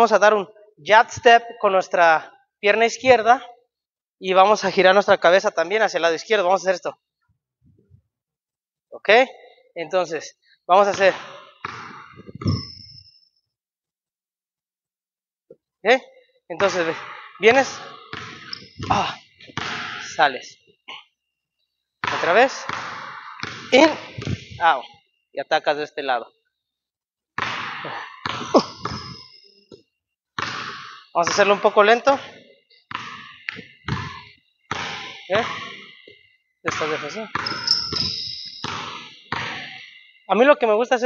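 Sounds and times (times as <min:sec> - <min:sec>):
basketball bouncing on hardwood: 0:10.9 - 0:13.1, 0:16.6 - 0:20.0, 0:22.0 - 0:24.6, 0:27.4 - 0:29.8, 0:30.4 - 0:31.4, 0:32.9 - 0:39.9
short high squeak: 0:12.4 - 0:13.2, 0:18.4 - 0:18.9, 0:37.4 - 0:38.6.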